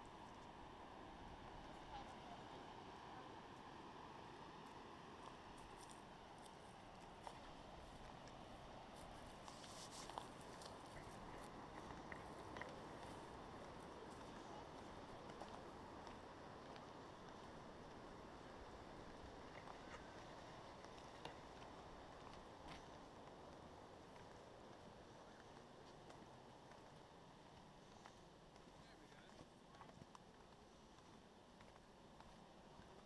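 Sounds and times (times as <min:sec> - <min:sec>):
steady low hiss: 0:00.0 - 0:33.0
footsteps on dirt trail: 0:04.5 - 0:33.0.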